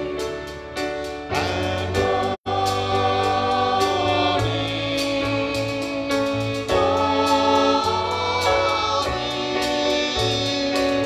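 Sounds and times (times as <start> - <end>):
instrumental accompaniment: 0.0 - 11.0
choir singing sustained notes: 1.3 - 11.0.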